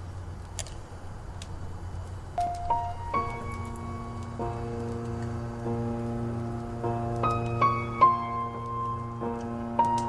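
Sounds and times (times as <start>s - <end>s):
slow piano chords: 2.3s - 10.0s.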